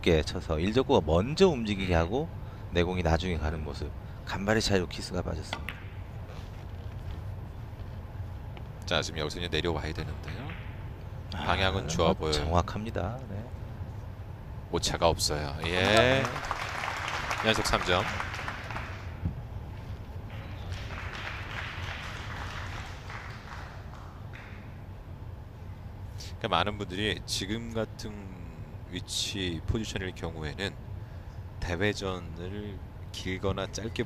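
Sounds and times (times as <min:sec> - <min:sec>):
audience applause: 0:15.8 - 0:19.1, 0:20.6 - 0:24.2.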